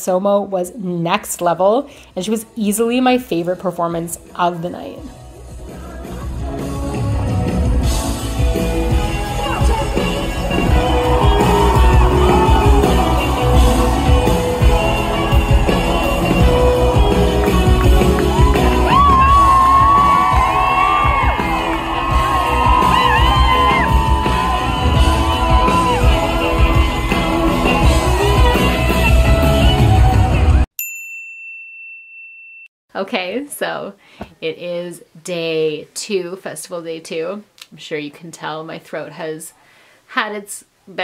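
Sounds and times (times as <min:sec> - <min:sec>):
live pop-rock band: 0:05.5 - 0:30.6
audience yelling and whooping: 0:08.4 - 0:30.5.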